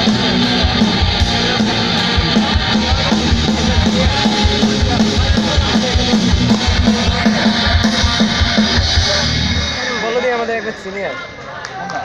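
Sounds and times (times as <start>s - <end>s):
live rock band playing: 0.0s - 11.4s.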